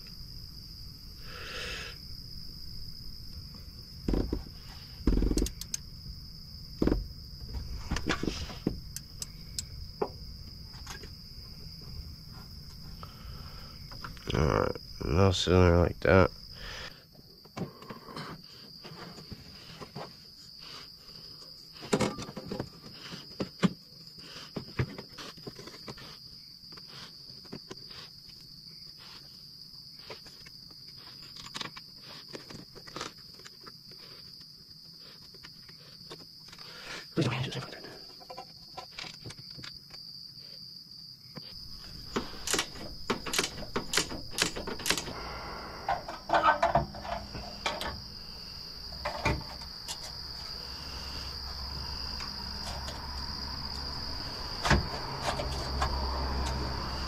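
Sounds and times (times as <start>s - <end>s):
crickets chirping: 0.0s - 57.0s.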